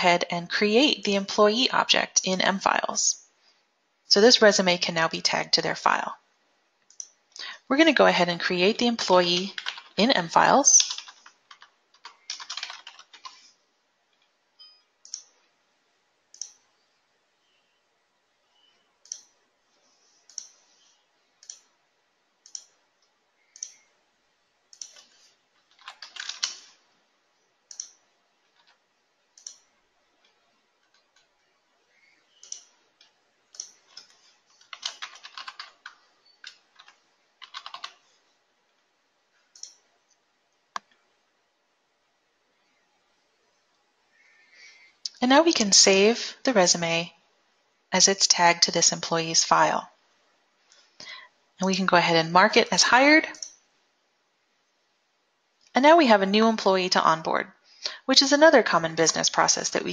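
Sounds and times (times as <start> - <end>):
typing on a keyboard: 9.2 - 10.0, 10.6 - 13.4, 24.7 - 26.7, 27.7 - 28.8, 32.4 - 32.8, 33.5 - 38.0
mouse clicks: 20.3 - 20.6, 27.7 - 28.0, 29.4 - 29.7, 32.3 - 32.7.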